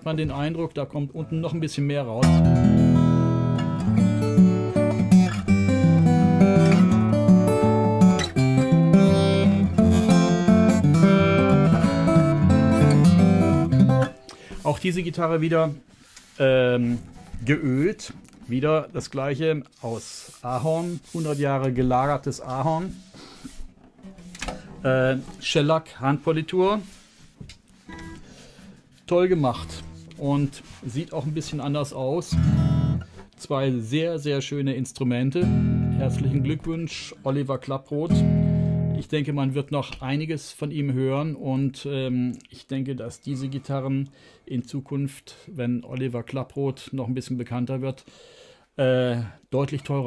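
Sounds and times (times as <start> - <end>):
fingerpicked acoustic guitar: 2.2 - 14.5, 27.8 - 28.7, 32.3 - 33.2, 35.4 - 36.7, 38.1 - 39.0.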